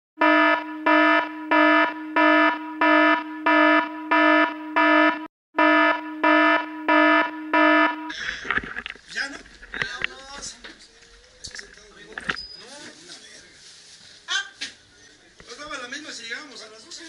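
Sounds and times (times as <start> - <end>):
electronic alarm buzzer: 0.2 - 8.1.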